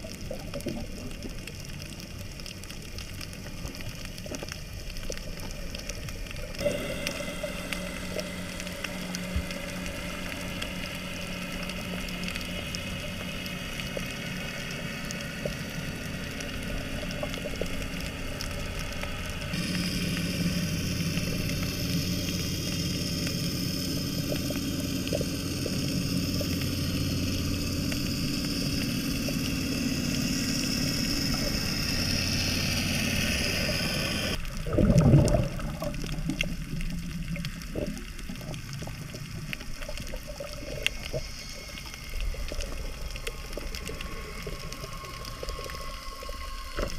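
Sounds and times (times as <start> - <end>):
hissing crackling water: 0.0 - 46.9
low underwater hum: 0.0 - 46.9
rush of water: 29.0 - 46.9.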